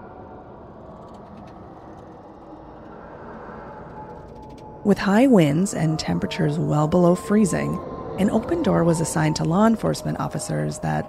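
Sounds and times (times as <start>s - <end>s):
faint sustained hum: 0.0s - 11.0s
steady background noise: 0.0s - 11.0s.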